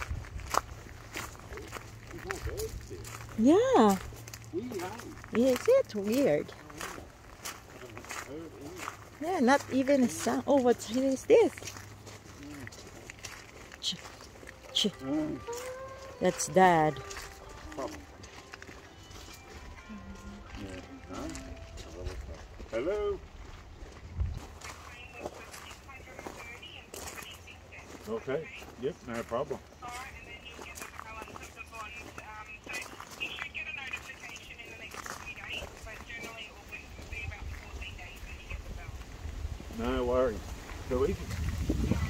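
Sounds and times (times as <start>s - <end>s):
mobile phone ringtone: 14.7s - 22.0s.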